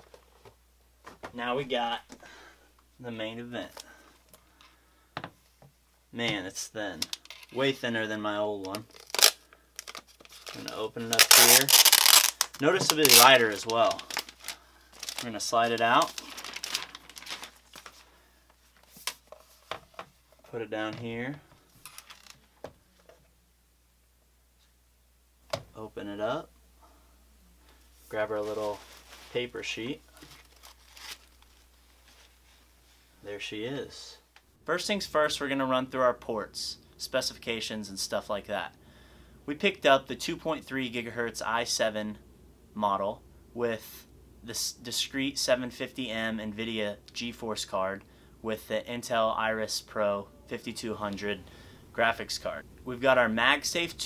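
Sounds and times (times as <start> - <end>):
plastic wrapping crinkling: 8.6 - 19.7, 21.8 - 22.6, 30.1 - 32.4.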